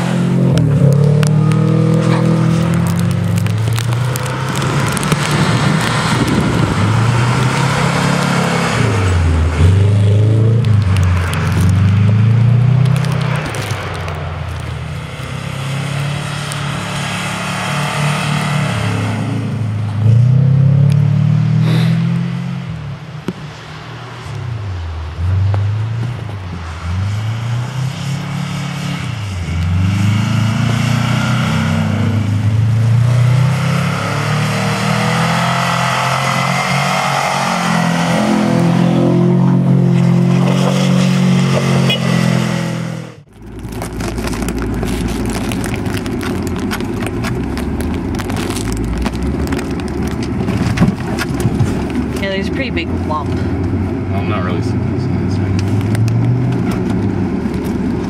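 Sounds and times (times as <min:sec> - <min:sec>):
car engine revving: 0:00.0 - 0:58.0
tyres crackling on snow: 0:00.0 - 0:58.0.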